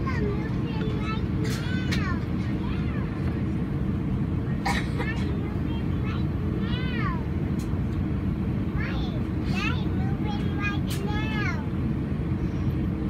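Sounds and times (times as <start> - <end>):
aircraft cabin rumble: 0.0 - 13.0
passengers' voices: 0.0 - 13.0.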